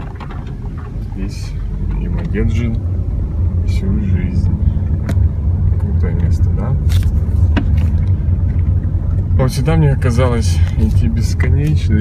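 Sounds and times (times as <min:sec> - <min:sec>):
sharp knocks and rattles: 0:00.0 - 0:01.1
car rumbling on rough road: 0:00.0 - 0:12.0.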